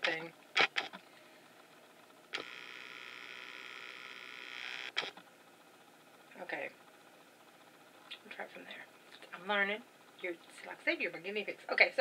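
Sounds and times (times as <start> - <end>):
lens zoom motor whirring: 0.5 - 1.0, 2.3 - 5.2.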